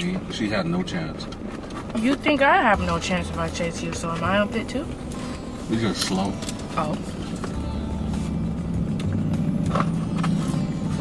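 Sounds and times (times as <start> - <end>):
low hum inside a car: 0.0 - 11.0.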